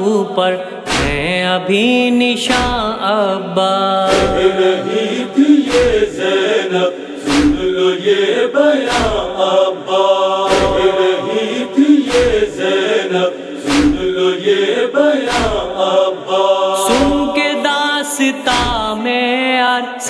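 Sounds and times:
voices chanting wordless drone: 0:02.4 - 0:20.0
heavy beat: 0:04.1 - 0:05.0, 0:05.6 - 0:06.2, 0:07.3 - 0:07.9, 0:10.5 - 0:12.8, 0:13.7 - 0:14.3.

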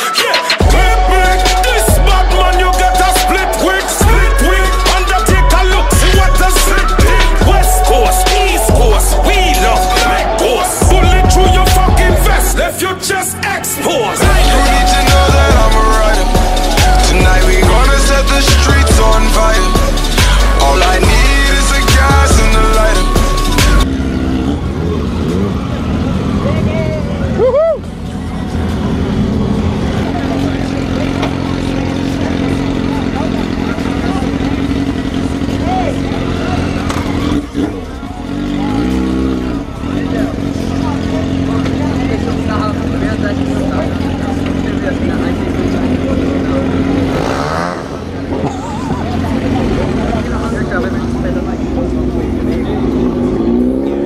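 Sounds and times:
motorcycle engines idling and revving: 0:00.0 - 0:54.0
people's voices: 0:00.0 - 0:54.0.

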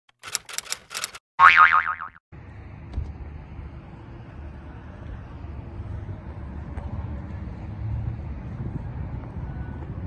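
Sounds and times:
quick run of clicks: 0:00.1 - 0:01.2
cartoon boing: 0:01.4 - 0:02.2.

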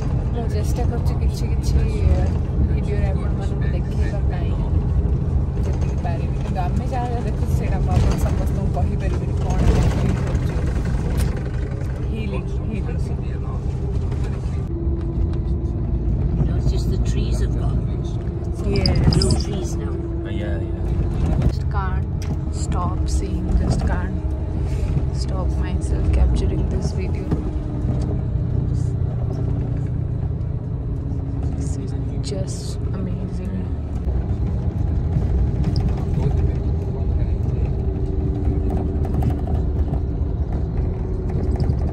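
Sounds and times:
vehicle cabin rumble and hum: 0:00.0 - 0:41.9.

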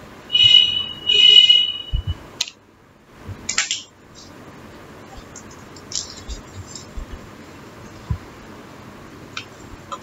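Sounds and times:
high-pitched buzzer tones: 0:00.3 - 0:02.2.

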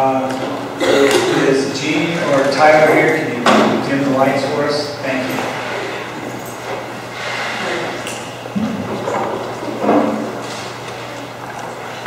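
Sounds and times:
indistinct voices: 0:00.0 - 0:12.0
steady low hum: 0:00.0 - 0:12.0.

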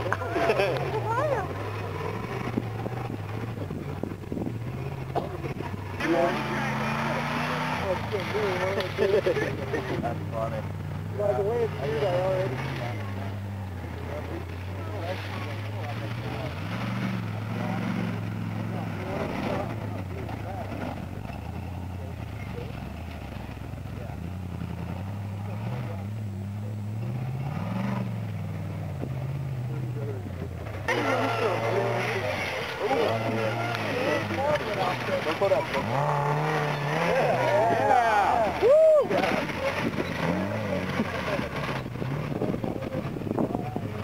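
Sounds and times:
people talking loudly: 0:00.0 - 0:24.4, 0:29.0 - 0:44.0
buggy engine revving: 0:00.0 - 0:44.0.

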